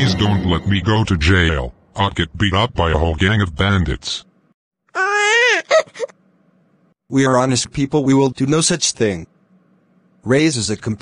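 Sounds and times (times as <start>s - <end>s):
high-pitched crying wail: 5.0s - 6.1s.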